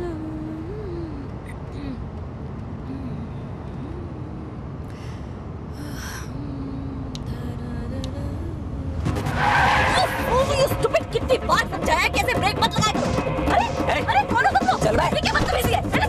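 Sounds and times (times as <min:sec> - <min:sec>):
car engine and road noise: 0:00.0 - 0:16.0
tyres screeching: 0:09.1 - 0:16.0.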